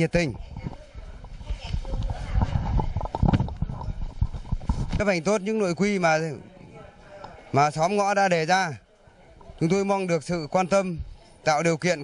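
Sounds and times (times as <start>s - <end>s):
microphone handling knocks: 1.7s - 5.0s.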